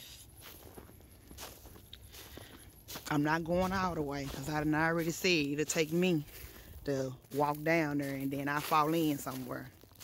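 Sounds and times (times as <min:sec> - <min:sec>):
footsteps in snow: 0:00.0 - 0:10.0.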